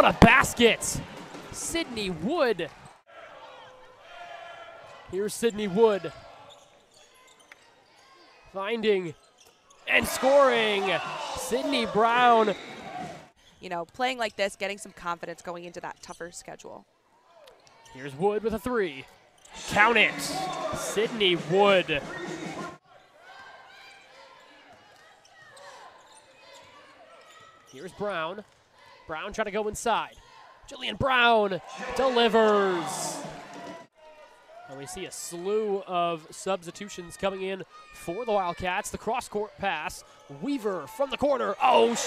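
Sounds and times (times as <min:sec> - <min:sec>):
arena crowd cheering: 0:00.0 - 0:06.1, 0:09.9 - 0:13.3, 0:19.6 - 0:23.8, 0:31.0 - 0:34.8, 0:37.0 - 0:42.0.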